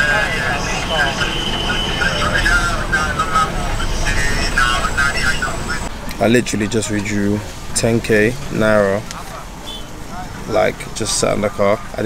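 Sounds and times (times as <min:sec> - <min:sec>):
car engine rumbling: 0:00.0 - 0:12.0
indistinct voices outside: 0:00.0 - 0:12.0.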